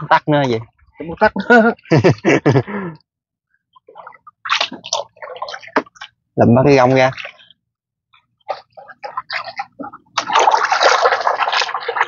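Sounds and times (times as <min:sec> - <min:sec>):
water splashing and sloshing: 0:00.0 - 0:02.7, 0:03.3 - 0:12.0.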